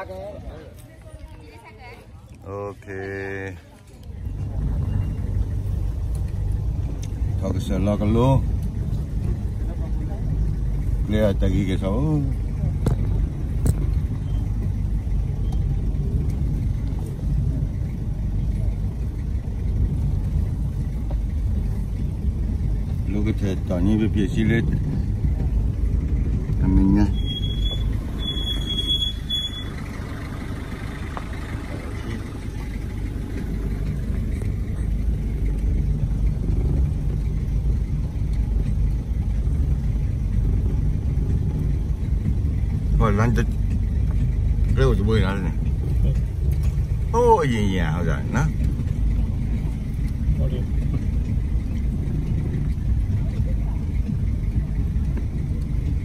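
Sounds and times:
car engine and road rumble: 0.0s - 56.0s.

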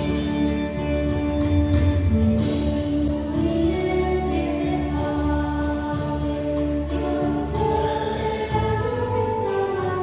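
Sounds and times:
choir singing a hymn: 3.1s - 10.0s.

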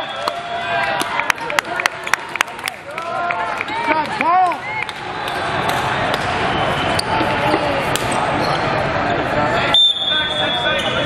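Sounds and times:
babble of many voices: 1.5s - 11.0s.

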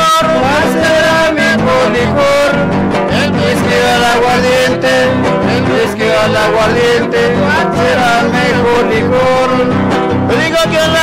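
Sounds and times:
strummed guitars: 0.0s - 11.0s.

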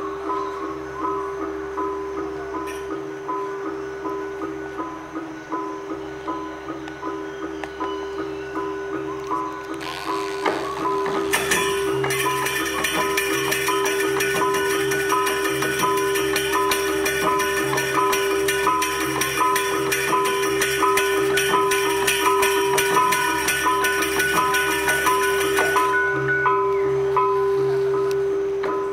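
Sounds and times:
gamelan ensemble playing: 0.0s - 28.9s
metallophones ringing: 0.0s - 28.9s.

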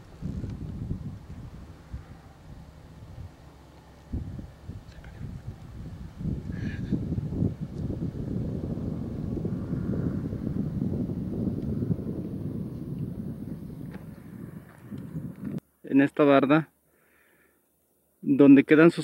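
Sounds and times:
wind buffeting microphone: 0.0s - 15.6s.

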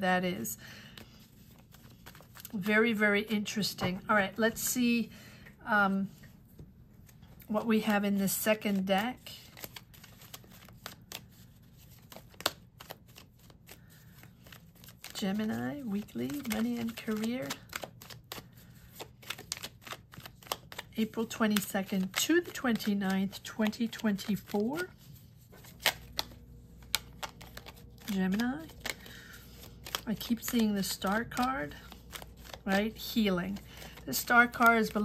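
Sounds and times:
cards being shuffled: 0.8s - 3.0s, 7.0s - 35.0s.

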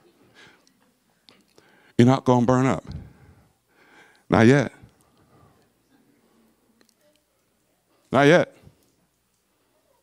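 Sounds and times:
man speaking over a microphone: 2.0s - 3.2s, 4.3s - 4.9s, 8.1s - 8.7s.

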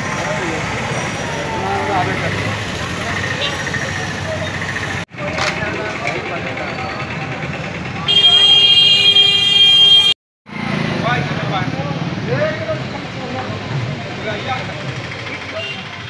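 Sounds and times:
motorcycles passing: 0.0s - 16.0s
voices on street: 0.0s - 16.0s
loud vehicle horn: 8.0s - 10.2s, 15.6s - 16.0s.

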